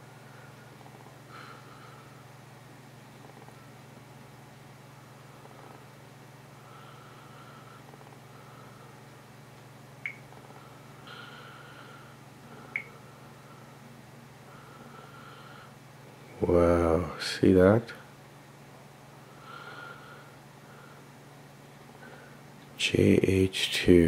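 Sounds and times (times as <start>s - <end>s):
faint low hum: 0.0s - 24.0s.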